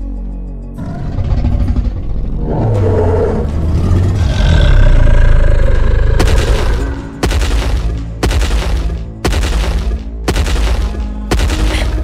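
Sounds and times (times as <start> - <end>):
long low dinosaur roar: 0.8 - 6.2.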